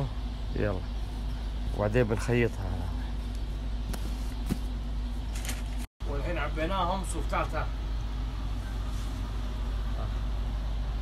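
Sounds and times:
low motor hum: 0.0s - 5.9s, 6.5s - 11.0s.

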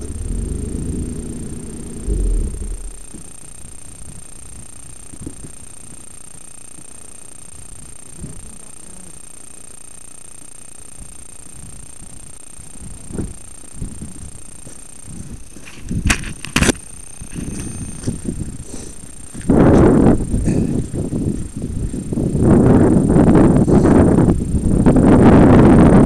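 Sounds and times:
vehicle rumbling off-road: 0.0s - 6.2s.

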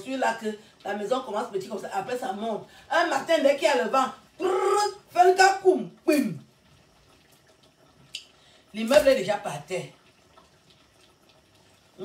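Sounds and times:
water running and splashing in sink: 0.0s - 12.0s
person's voice trailing off: 4.4s - 5.0s.

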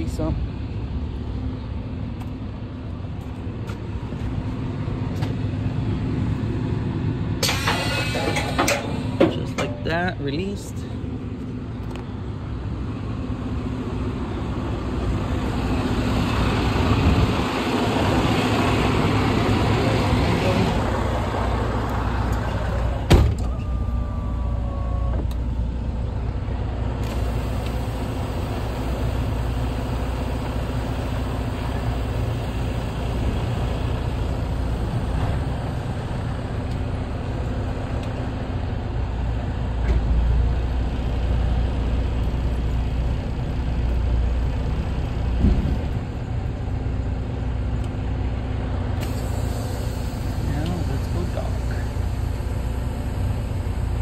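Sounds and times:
diesel engine idling: 0.0s - 54.0s
hiss: 49.0s - 52.6s.

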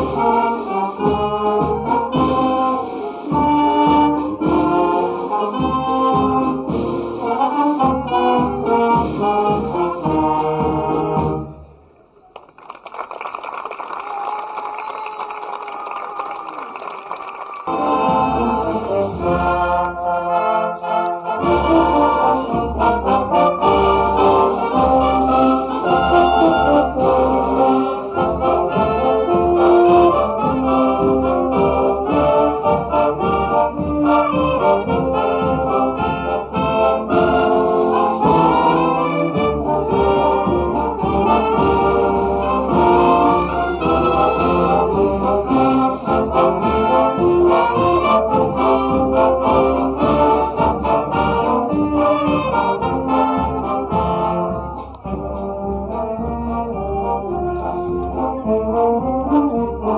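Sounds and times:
tubas: 0.0s - 12.0s, 16.5s - 59.9s
wind band playing: 0.0s - 12.0s, 15.3s - 59.9s.

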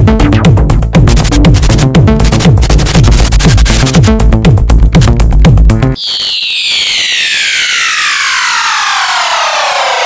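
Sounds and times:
electronic music beat: 0.0s - 8.0s
buzzy synth sweep gliding downward: 6.0s - 10.0s.

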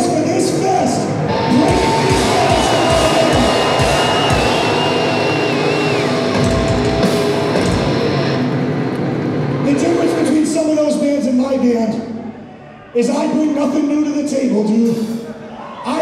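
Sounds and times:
distorted guitar riff: 1.3s - 8.9s
high guitar tone sliding down: 1.3s - 9.0s.

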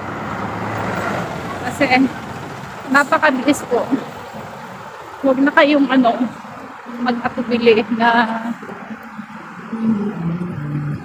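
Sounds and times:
street noise: 0.0s - 11.0s
woman humming tones: 9.7s - 11.0s.

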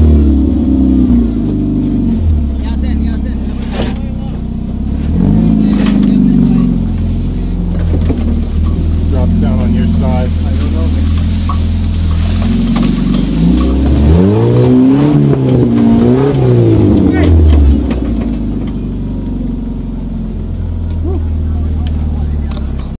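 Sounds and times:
jeep engine revving: 0.0s - 23.0s.

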